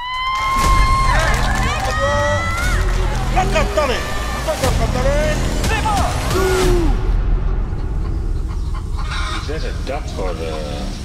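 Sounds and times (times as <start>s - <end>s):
voices shouting and cheering: 0.0s - 7.2s.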